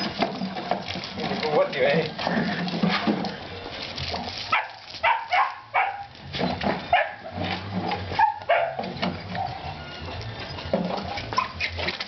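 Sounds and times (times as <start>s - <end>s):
dogs barking and yipping: 4.3s - 12.0s.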